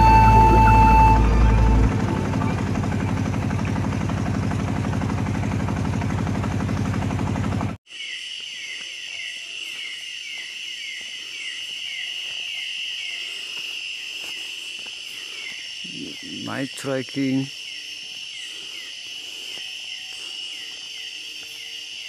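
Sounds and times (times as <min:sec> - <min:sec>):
boat motor running: 0:00.0 - 0:07.8
insect chirps: 0:07.9 - 0:22.0
insects trilling: 0:07.9 - 0:22.0.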